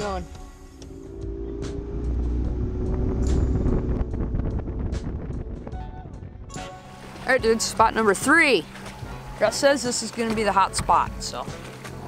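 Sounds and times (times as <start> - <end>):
background music: 0.0 - 12.0
outboard motor rumble: 0.0 - 12.0.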